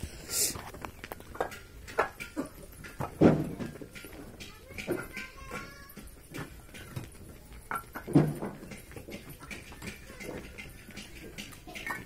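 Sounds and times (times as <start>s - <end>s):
bricks clacking together: 0.7s - 12.0s.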